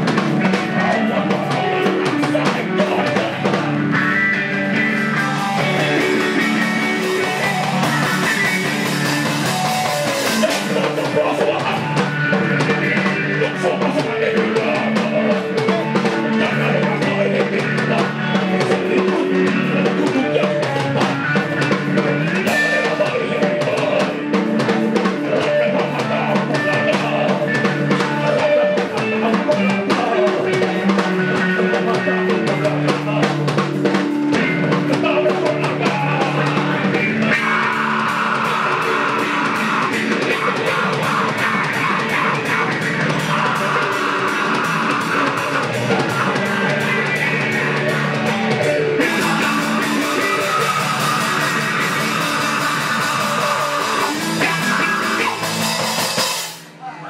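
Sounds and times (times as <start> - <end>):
drum kit: 0.0 - 56.9
rock band playing: 0.0 - 56.9
electric guitar: 0.0 - 57.0
person singing: 0.0 - 57.0.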